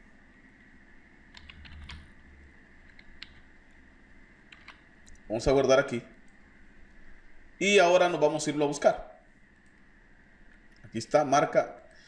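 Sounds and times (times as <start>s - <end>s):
computer keyboard typing: 1.3s - 2.1s, 2.8s - 3.5s, 4.5s - 4.8s.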